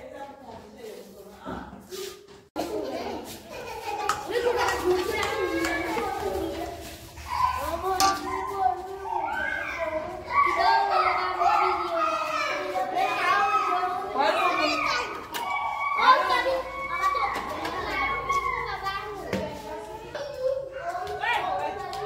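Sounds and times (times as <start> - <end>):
children talking and calling out: 1.4 - 22.0.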